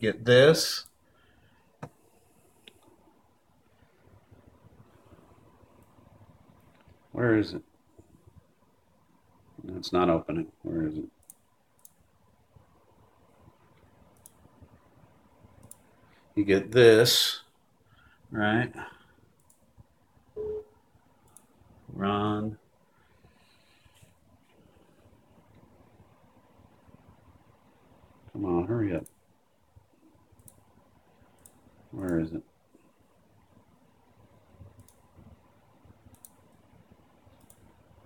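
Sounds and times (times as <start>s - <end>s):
faint computer mouse clicks: 14.1s - 14.4s, 30.4s - 30.7s, 34.8s - 35.0s, 36.1s - 36.6s, 37.3s - 37.7s
computer alert beep: 20.4s - 20.8s.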